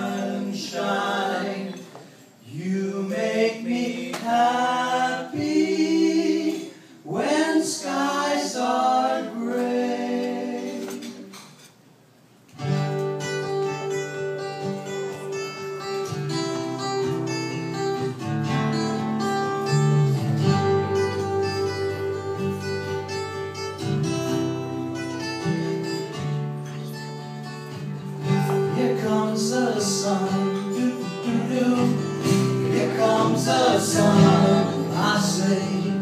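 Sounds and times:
men singing: 0:00.0 - 0:11.4, 0:28.5 - 0:36.0
acoustic guitars: 0:00.0 - 0:36.0.

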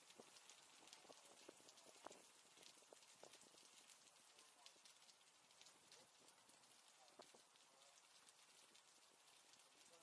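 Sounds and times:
light ticks and clicks: 0:00.0 - 0:10.0
faint voices: 0:04.2 - 0:08.4.

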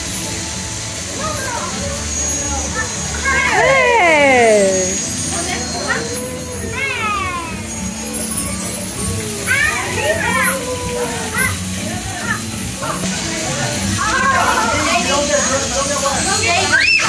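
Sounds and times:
crowd chatter: 0:00.0 - 0:17.0
children squealing: 0:01.2 - 0:13.1, 0:14.0 - 0:17.0.

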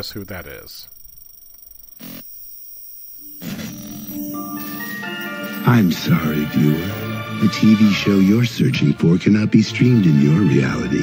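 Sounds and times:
low droning theme music: 0:03.3 - 0:11.0.

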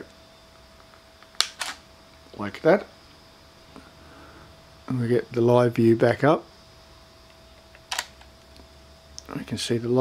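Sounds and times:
camera mechanical clicks: 0:01.4 - 0:01.8, 0:07.8 - 0:08.3.

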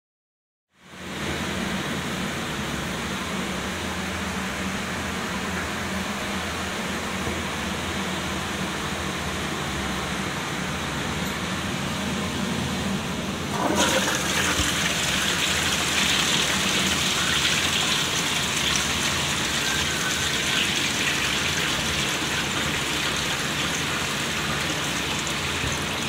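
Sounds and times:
toilet flushing: 0:13.3 - 0:26.0.

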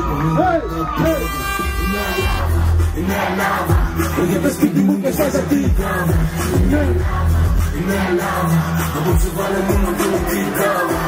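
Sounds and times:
person rapping: 0:00.0 - 0:11.0
electronic beat with synth tones: 0:01.6 - 0:11.0.

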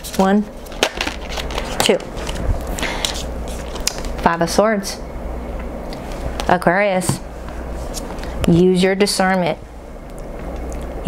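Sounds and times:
cards being shuffled: 0:00.0 - 0:04.2.

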